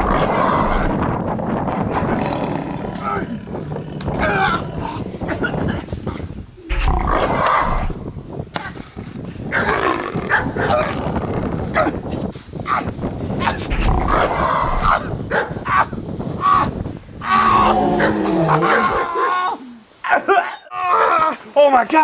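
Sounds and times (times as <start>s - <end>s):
person growling and roaring: 0.0s - 5.6s, 6.6s - 8.0s, 9.6s - 12.0s, 13.4s - 15.9s, 17.2s - 19.8s
drawn-out falling groan: 1.8s - 5.2s, 17.2s - 19.2s
men grunting: 1.8s - 6.2s, 13.4s - 21.5s.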